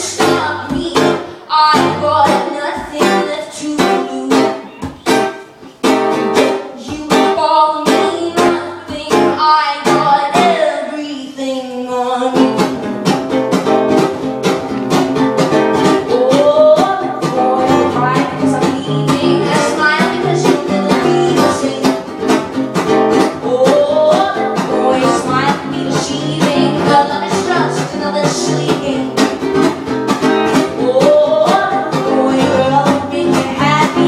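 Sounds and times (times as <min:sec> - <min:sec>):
woman singing: 0:00.0 - 0:05.0, 0:06.1 - 0:12.9, 0:15.7 - 0:34.0
acoustic guitar strumming: 0:00.0 - 0:34.0.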